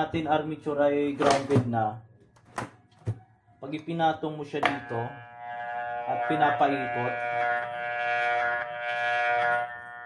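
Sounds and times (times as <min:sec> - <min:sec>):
electromagnet humming: 0:04.2 - 0:10.0
rough buzz: 0:04.5 - 0:10.0.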